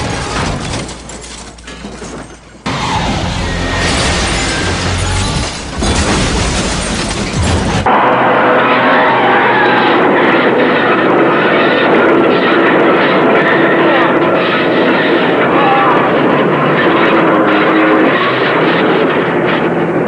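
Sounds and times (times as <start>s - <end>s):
truck engine running hard: 2.6s - 5.7s.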